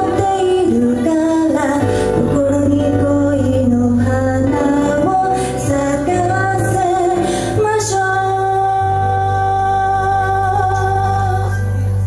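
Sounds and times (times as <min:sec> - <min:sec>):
woman singing into a microphone: 0:00.0 - 0:12.0.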